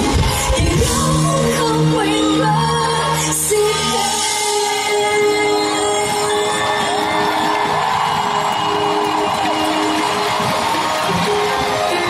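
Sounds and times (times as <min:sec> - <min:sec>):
live band music over sound system: 0:00.0 - 0:12.0
crowd cheering and whooping: 0:03.7 - 0:12.0.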